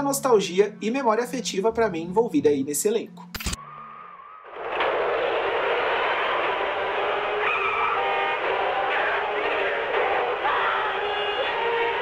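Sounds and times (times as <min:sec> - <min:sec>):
dense rushing noise: 0:04.5 - 0:09.9.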